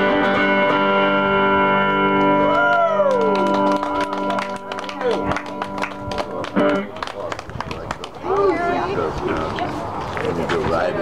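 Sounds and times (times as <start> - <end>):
hand clapping: 2.5 - 8.4
people talking: 6.0 - 11.0.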